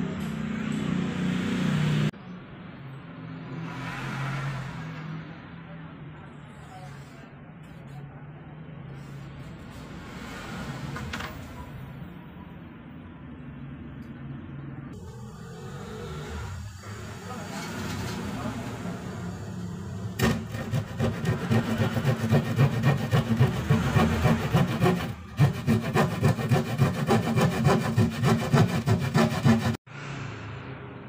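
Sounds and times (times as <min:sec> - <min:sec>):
handsaw cutting plywood: 0:20.2 - 0:29.8.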